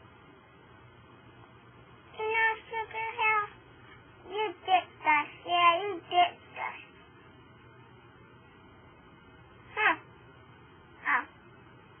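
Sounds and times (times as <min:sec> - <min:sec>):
girl singing: 0:02.1 - 0:03.6, 0:04.2 - 0:06.9.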